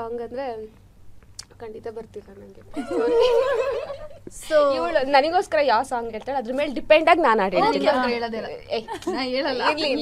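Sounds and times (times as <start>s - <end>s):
woman laughing loudly: 2.8s - 4.3s.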